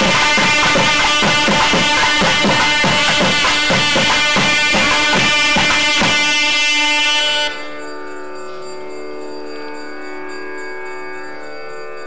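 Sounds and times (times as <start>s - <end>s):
drum strokes: 0.0s - 6.7s
steady held drone tone: 0.0s - 12.0s.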